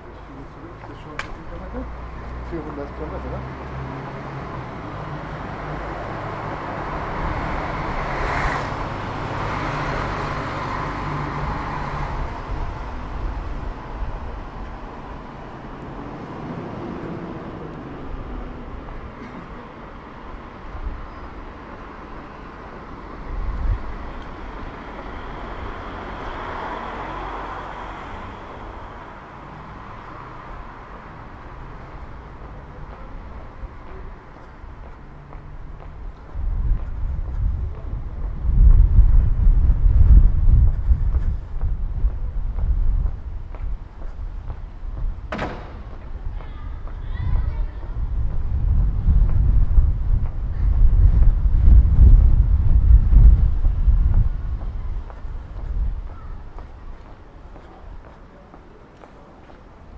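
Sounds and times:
cars passing: 0:00.0 - 0:59.9
steady low rumble: 0:32.0 - 0:58.0
short low thump: 0:44.5 - 0:46.2.

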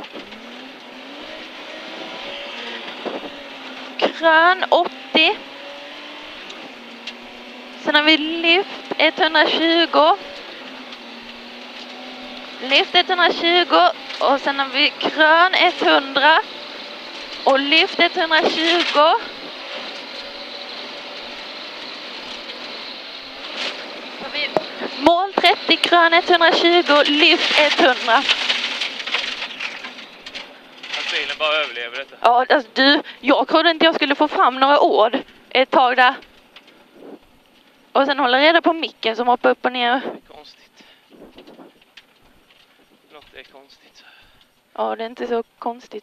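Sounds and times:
car driving on gravel: 0:00.0 - 0:46.0.

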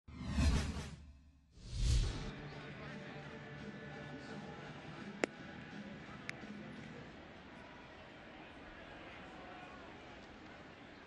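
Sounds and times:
whoosh sound effects: 0:01.6 - 0:02.3.

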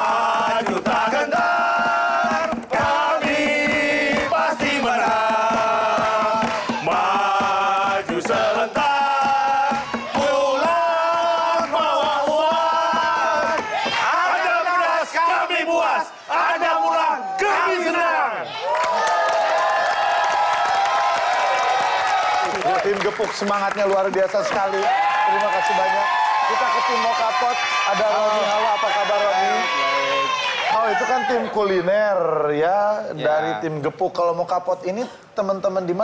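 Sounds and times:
men shouting a chant: 0:00.0 - 0:18.5, 0:24.7 - 0:31.9.

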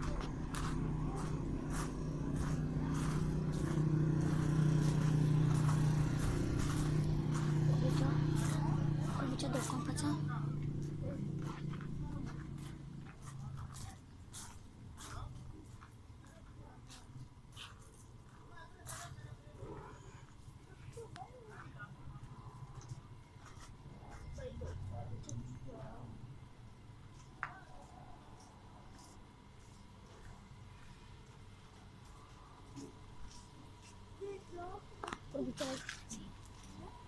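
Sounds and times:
vehicle engine humming: 0:00.0 - 0:16.8
faint distant voices: 0:00.0 - 0:37.0.

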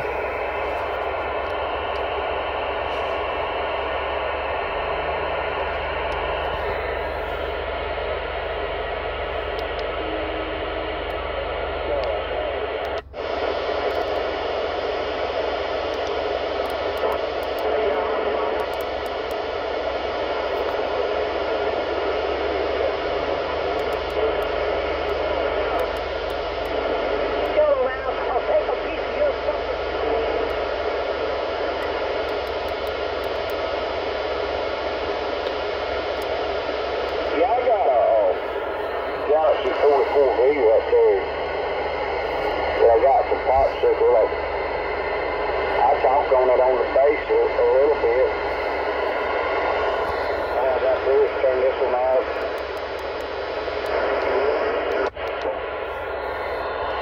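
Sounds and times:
radio static and hiss: 0:00.0 - 0:57.0.

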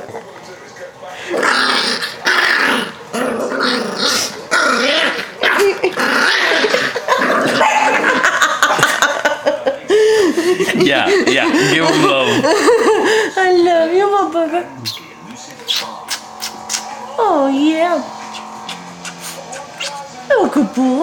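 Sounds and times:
dog growling: 0:01.2 - 0:08.5, 0:15.5 - 0:21.0.

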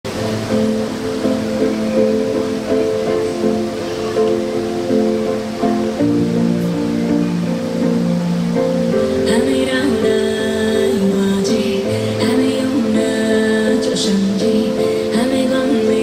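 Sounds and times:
slow sustained backing chords: 0:00.1 - 0:16.0.

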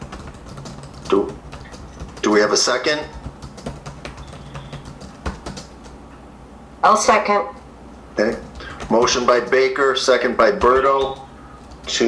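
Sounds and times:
computer keyboard typing: 0:00.0 - 0:06.0, 0:08.2 - 0:12.0
faint low hum: 0:00.0 - 0:12.0.

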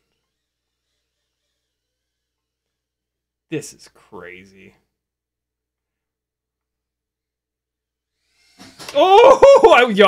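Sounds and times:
man speaking: 0:03.5 - 0:04.9, 0:09.0 - 0:10.0.

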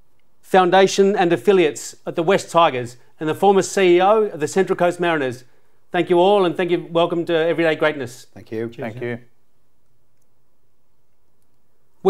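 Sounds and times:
man speaking: 0:00.5 - 0:09.4.

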